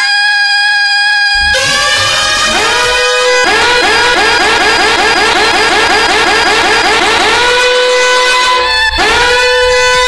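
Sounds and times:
police siren whoops: 1.3s - 10.0s.

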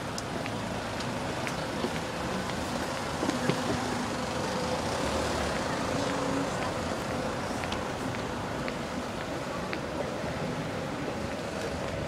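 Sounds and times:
passing cars: 0.0s - 12.0s.

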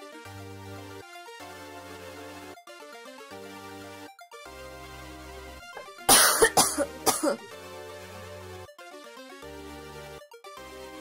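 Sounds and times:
synthwave music with held chords: 0.0s - 11.0s
loud coughs: 6.1s - 7.4s.

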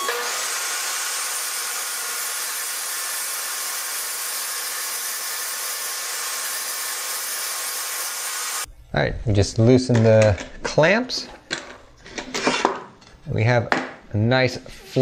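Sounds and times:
table saw whining: 0.0s - 8.7s.

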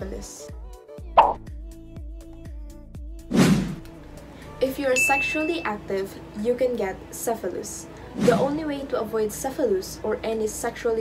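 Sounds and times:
background music with steady beat: 0.0s - 11.0s
pop with falling pitch: 1.2s - 1.4s.

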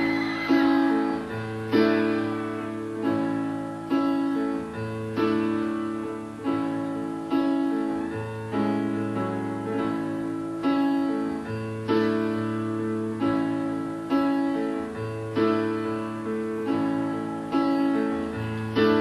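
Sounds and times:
piano chords: 0.0s - 19.0s.

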